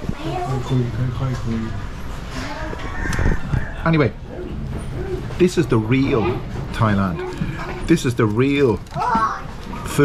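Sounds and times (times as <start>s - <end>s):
children's voices: 0.0s - 1.6s, 2.2s - 3.6s, 8.8s - 10.0s
rooster crowing: 2.8s - 3.9s.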